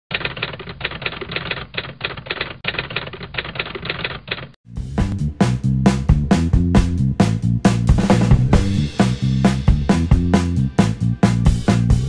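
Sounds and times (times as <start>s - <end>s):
typewriter keystrokes clacking: 0.1s - 4.6s.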